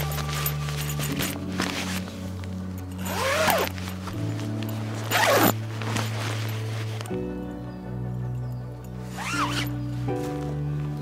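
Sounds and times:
background music: 0.0s - 11.0s
zipper pulled closed: 2.9s - 4.3s, 4.9s - 7.1s, 9.1s - 9.8s.

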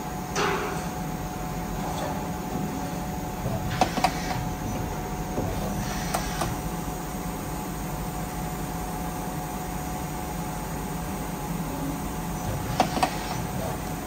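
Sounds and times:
faint machine whine: 0.0s - 14.0s
lathe machine hum: 1.0s - 14.0s.

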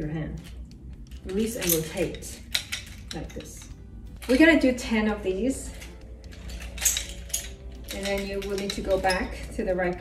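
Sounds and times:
metal sticks clinking: 0.4s - 10.0s
chain jingling: 1.0s - 4.6s, 5.6s - 9.8s.

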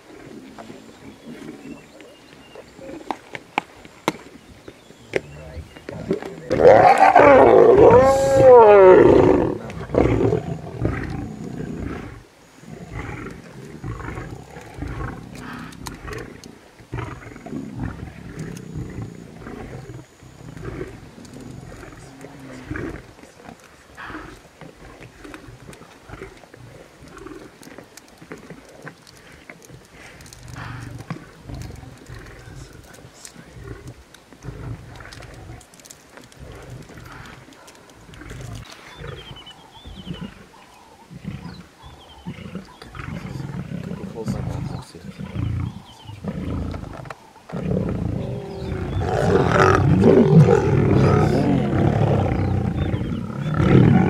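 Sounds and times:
lions growling: 0.0s - 54.0s.

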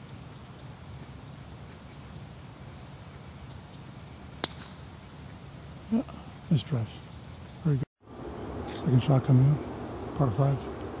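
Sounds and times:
faint background noise: 0.0s - 11.0s
golf driver striking ball: 4.4s - 4.9s.

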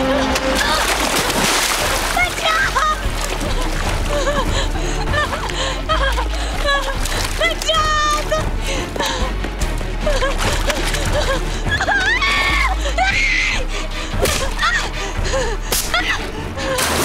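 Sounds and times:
tense film score with drone: 0.0s - 17.0s.

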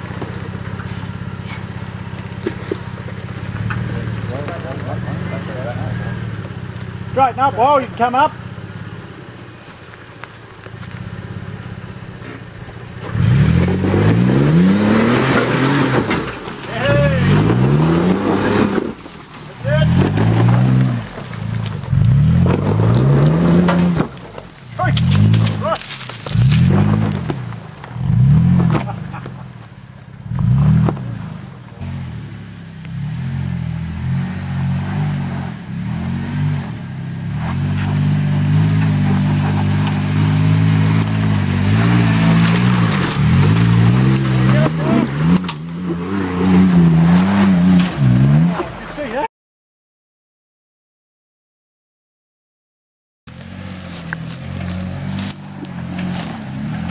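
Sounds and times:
car engine revving hard: 13.0s - 19.0s, 19.6s - 24.2s, 26.3s - 29.4s, 30.2s - 32.3s, 32.9s - 48.7s.

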